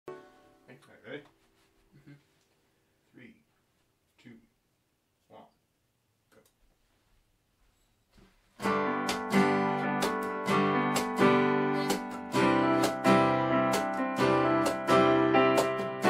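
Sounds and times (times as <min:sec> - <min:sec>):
acoustic guitar strumming chords: 0:08.6 - 0:16.0
keyboard playing: 0:08.6 - 0:16.0.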